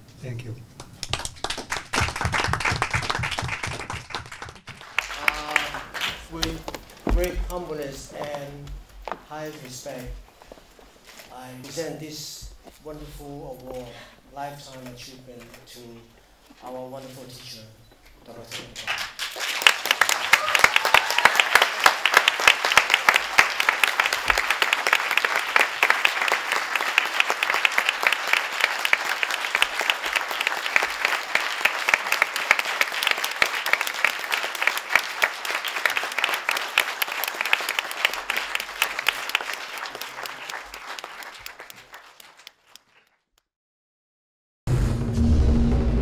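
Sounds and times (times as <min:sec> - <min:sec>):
audience applauding: 0:00.8 - 0:08.0, 0:18.6 - 0:43.2.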